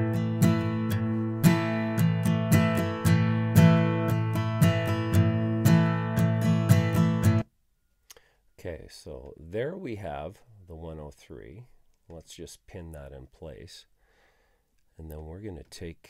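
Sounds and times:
acoustic guitar strummed chords: 0.0s - 7.4s.

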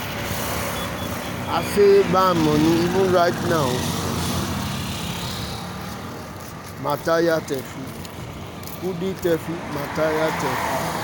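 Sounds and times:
motorcycle passing: 0.0s - 11.0s
man talking: 1.5s - 4.0s, 6.7s - 8.0s, 8.7s - 10.8s.

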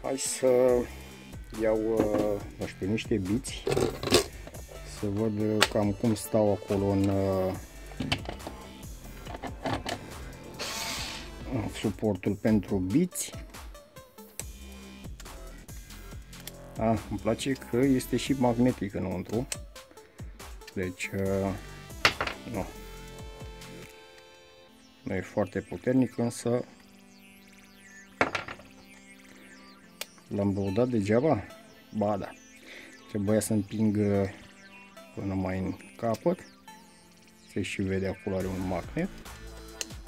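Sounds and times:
background music: 0.0s - 40.0s
screwdriver bit landing on wood: 22.1s - 22.4s, 28.2s - 28.7s.

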